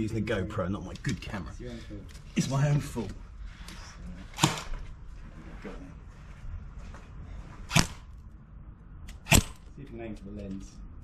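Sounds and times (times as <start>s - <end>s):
airsoft gun firing: 4.4s - 4.7s, 7.7s - 8.1s, 9.2s - 9.6s.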